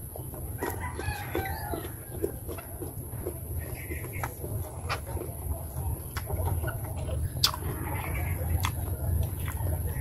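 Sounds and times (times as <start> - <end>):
chewing: 0.0 - 10.0
rooster crowing: 0.6 - 2.2.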